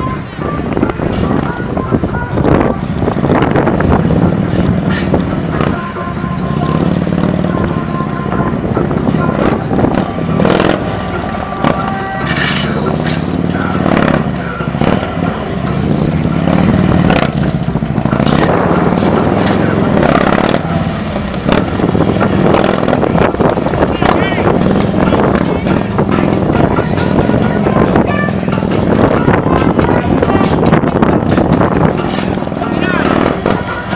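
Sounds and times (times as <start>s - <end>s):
music: 0.0s - 33.9s
motorcycle engine at low revs: 2.6s - 33.9s
voices: 4.1s - 33.9s.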